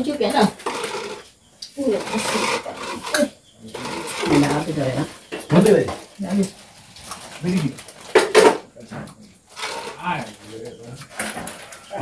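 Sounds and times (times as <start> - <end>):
indistinct voices talking: 0.0 - 6.6.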